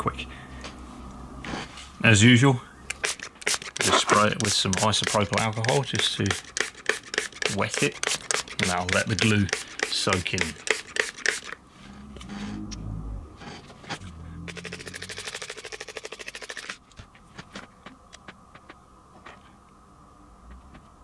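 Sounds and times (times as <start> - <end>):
spray bottle misting: 2.9 - 11.6, 14.6 - 16.6.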